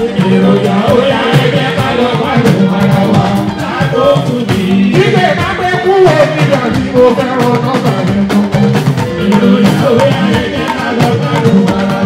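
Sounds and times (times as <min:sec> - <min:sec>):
electric guitar and bass: 0:00.0 - 0:12.0
man singing into microphone: 0:00.0 - 0:12.0
talking drums and percussion: 0:00.0 - 0:12.0.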